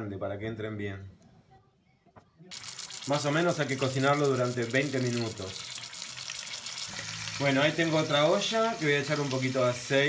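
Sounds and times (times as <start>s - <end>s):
peppers sizzling in oil: 2.5s - 10.0s.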